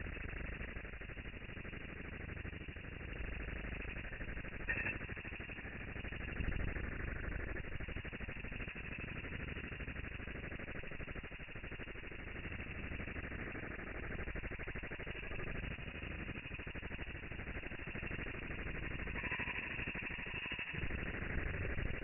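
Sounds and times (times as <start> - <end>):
low rattling drone: 16.9 - 22.0.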